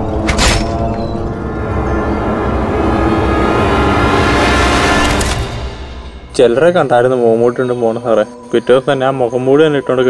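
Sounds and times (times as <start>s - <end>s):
low rumbling drone: 0.0s - 7.1s.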